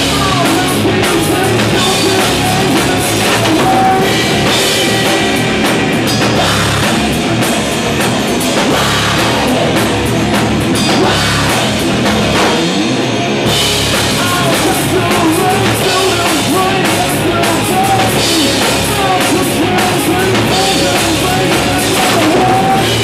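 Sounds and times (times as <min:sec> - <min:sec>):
bass guitar: 0:00.0 - 0:23.0
drum kit: 0:00.0 - 0:23.0
electric guitar: 0:00.0 - 0:23.0.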